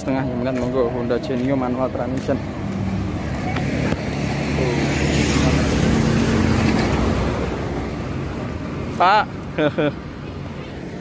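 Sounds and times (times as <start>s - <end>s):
vehicle engine hum and road noise: 0.0s - 11.0s.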